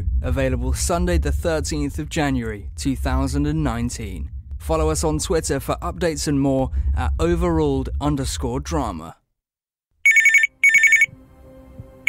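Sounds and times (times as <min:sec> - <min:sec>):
faint low hum: 0:00.0 - 0:09.1
telephone ringing: 0:10.1 - 0:11.1.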